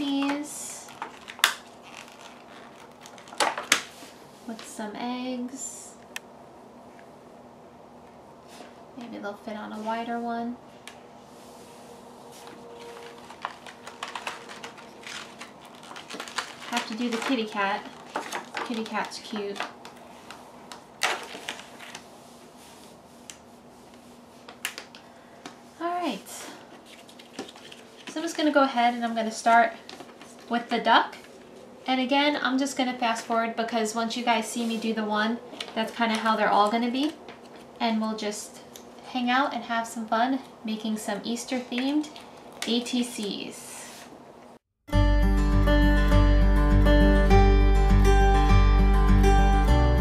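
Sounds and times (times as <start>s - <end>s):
plastic sheet crinkling: 0.0s - 4.3s, 12.2s - 25.0s, 25.8s - 31.6s
faint rustling: 9.6s - 31.8s.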